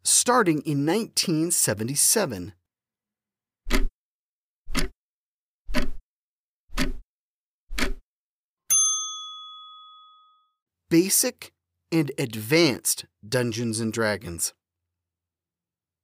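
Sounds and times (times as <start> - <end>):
clock-like ticks: 3.7 - 3.9, 4.7 - 5.0, 5.7 - 6.0, 6.7 - 7.0, 7.7 - 8.0
bell ding: 8.7 - 10.6.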